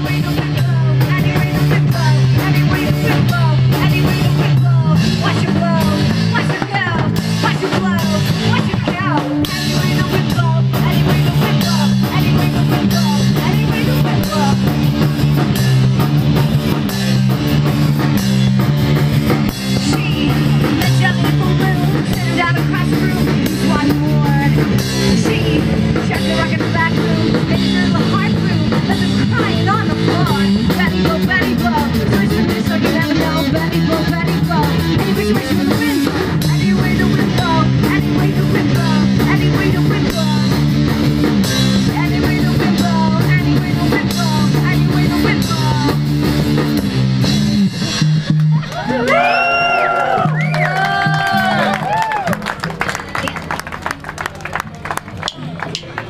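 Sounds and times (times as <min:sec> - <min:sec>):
drum kit: 0:00.0 - 0:54.2.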